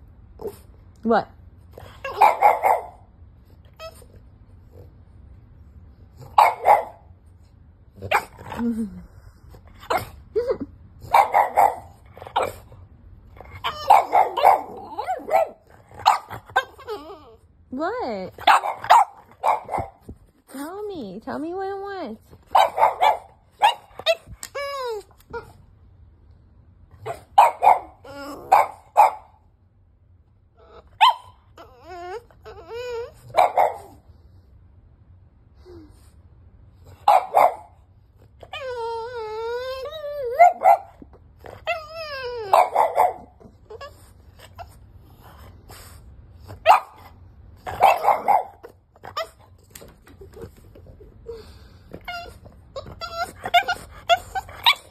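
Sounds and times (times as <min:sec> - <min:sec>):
puppy barking and yowling: 0:01.9 - 0:03.1, 0:06.2 - 0:07.1, 0:11.0 - 0:12.6, 0:13.4 - 0:17.4, 0:18.0 - 0:20.1, 0:22.5 - 0:25.6, 0:27.0 - 0:29.4, 0:30.6 - 0:34.0, 0:37.0 - 0:37.8, 0:38.4 - 0:44.8, 0:46.6 - 0:50.2, 0:51.9 - 0:54.9.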